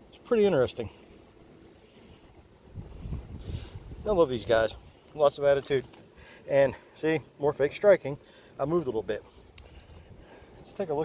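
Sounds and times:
wind buffeting microphone: 0:02.3 - 0:05.0.

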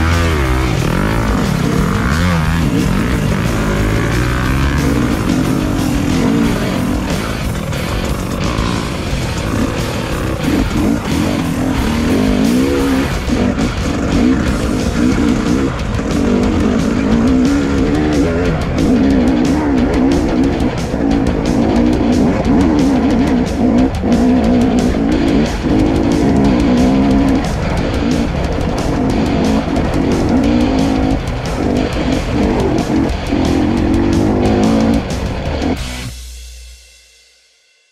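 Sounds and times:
dirt bike engine revving: 0:00.0 - 0:36.1
background music: 0:00.0 - 0:36.8.

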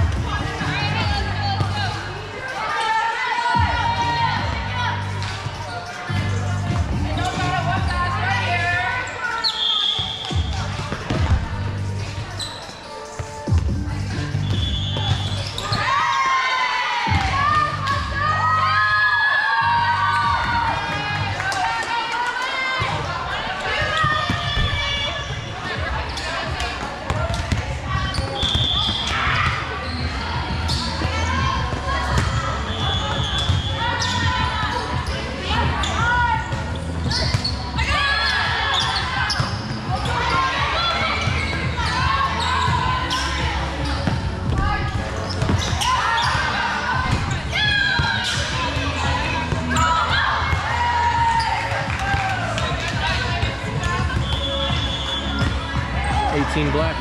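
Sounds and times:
players chattering and calling: 0:00.0 - 0:57.0.

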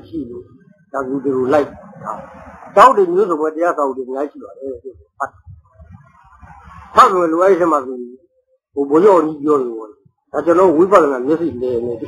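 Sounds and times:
man speaking: 0:00.0 - 0:05.5, 0:06.9 - 0:08.2, 0:08.8 - 0:12.0.

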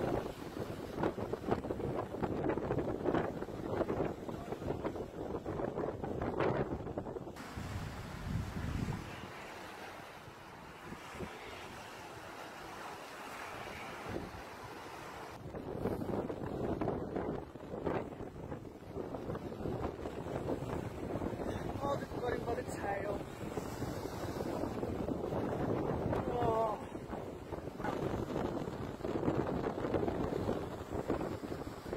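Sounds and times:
waves breaking on sandy shore: 0:00.0 - 0:31.9
wind buffeting microphone: 0:00.0 - 0:31.9.

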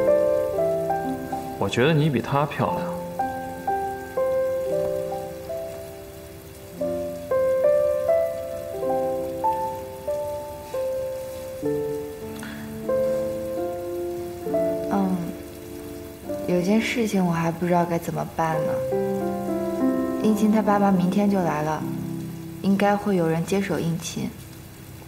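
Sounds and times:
gentle melody of held notes: 0:00.0 - 0:25.0.

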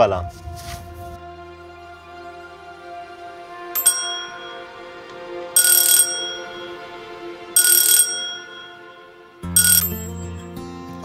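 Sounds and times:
background music: 0:00.0 - 0:11.0
intercom electronic chimes: 0:07.6 - 0:10.2.

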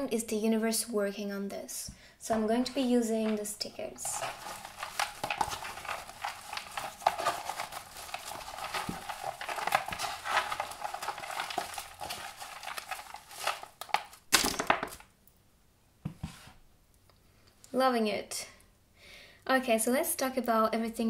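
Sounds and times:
paper stickers rustling: 0:02.3 - 0:15.0.

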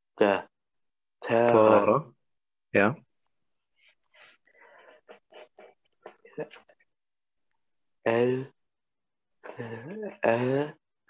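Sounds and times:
person mumbling under breath: 0:09.5 - 0:10.8.

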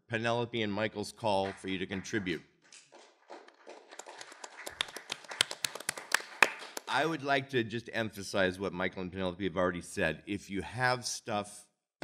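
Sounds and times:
person speaking: 0:00.0 - 0:02.5, 0:06.8 - 0:11.7.

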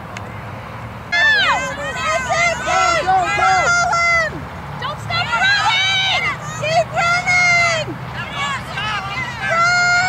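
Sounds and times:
crowd chatter: 0:01.1 - 0:10.0
spectators yelling and cheering: 0:01.1 - 0:10.0.

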